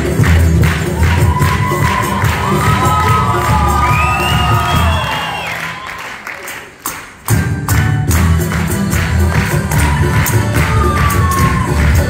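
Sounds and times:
audience cheering and shouting: 0:00.8 - 0:06.5, 0:09.6 - 0:12.0
ensemble playing and singing: 0:07.4 - 0:12.0.

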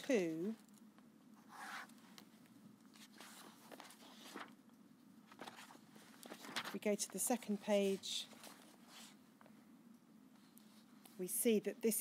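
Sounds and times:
paper rustling: 0:01.5 - 0:04.6, 0:05.2 - 0:09.2.

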